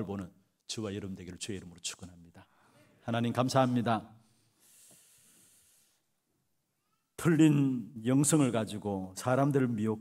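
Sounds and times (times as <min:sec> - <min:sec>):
faint high hiss: 0:01.8 - 0:09.9.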